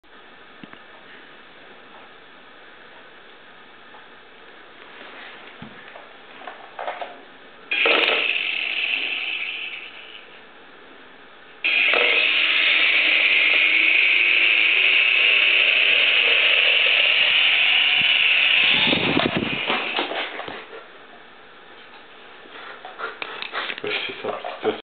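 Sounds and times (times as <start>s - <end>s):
toy helicopter rotors whirring: 7.7s - 10.1s, 11.6s - 20.1s.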